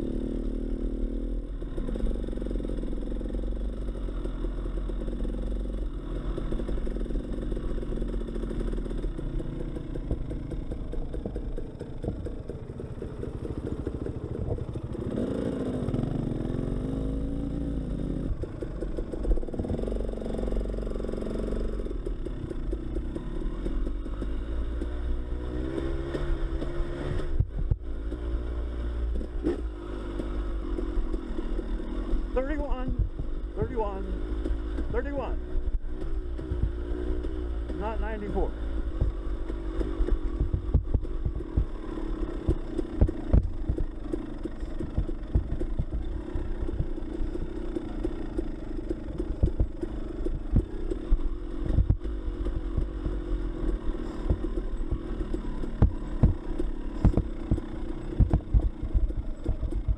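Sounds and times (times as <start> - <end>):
dirt bike engine revving: 0.0 - 59.9
bike knocking over rough ground: 38.9 - 59.9.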